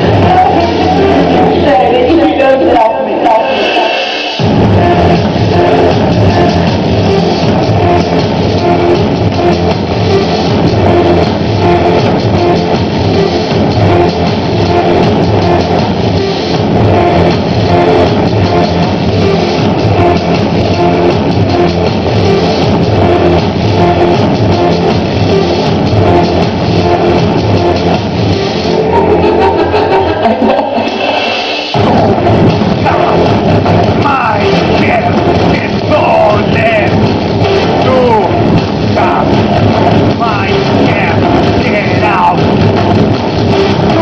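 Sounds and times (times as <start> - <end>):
driving drum beat: 0.0 - 1.8, 4.4 - 44.0
band playing industrial music: 0.0 - 44.0.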